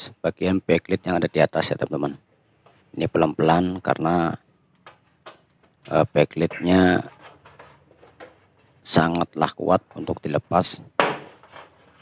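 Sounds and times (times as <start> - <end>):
fingers rubbing and scraping: 6.4 - 8.6, 11.4 - 12.0.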